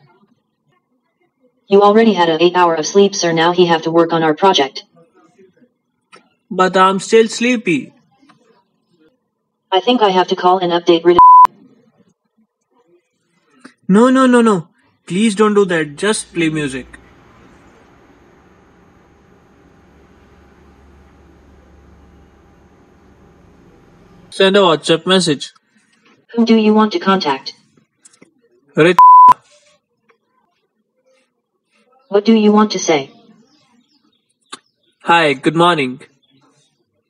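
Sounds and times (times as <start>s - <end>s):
censor bleep tone: 11.2s - 11.5s, 29.0s - 29.4s
person speaking: 15.1s - 20.0s.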